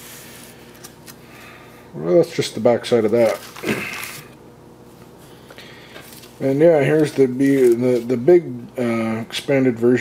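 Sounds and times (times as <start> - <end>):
paper pages rustling: 3.1 - 4.4, 6.0 - 8.2.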